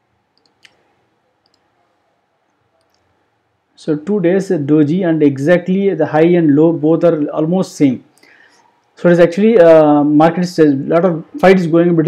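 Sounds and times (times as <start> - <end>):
computer clicks: 0.4 - 0.8, 1.4 - 1.7
person speaking: 3.8 - 8.2, 9.0 - 12.0.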